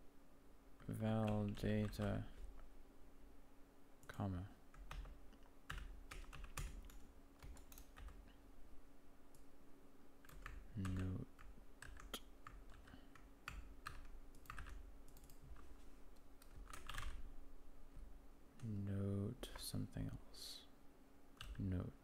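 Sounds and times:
faint steady hum: 0.0 - 22.0
typing on a keyboard: 4.8 - 8.2, 10.2 - 15.4, 16.4 - 17.2.

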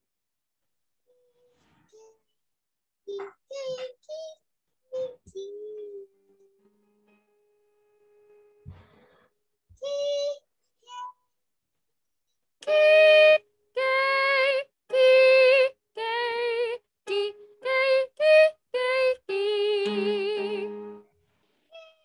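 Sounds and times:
high voice singing held notes: 12.6 - 21.0.

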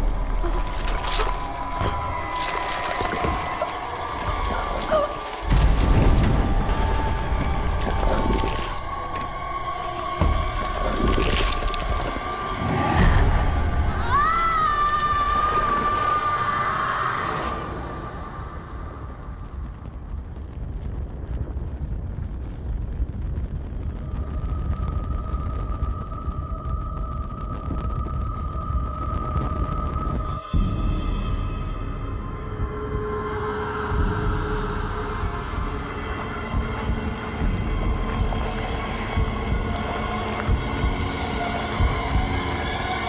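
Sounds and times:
low ominous rumbling drone: 0.0 - 43.0.

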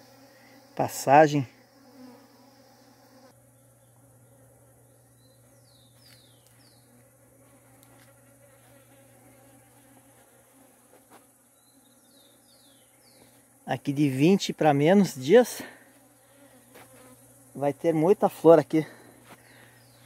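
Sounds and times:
honeybees buzzing: 0.0 - 20.0.

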